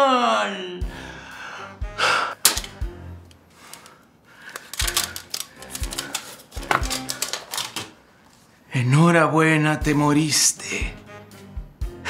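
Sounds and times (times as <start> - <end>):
light background music: 0.0 - 12.0
papers crackling as handled: 3.6 - 8.5.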